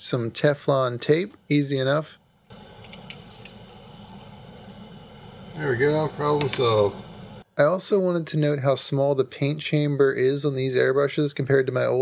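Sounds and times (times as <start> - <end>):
steady low hum: 0.1 - 7.5.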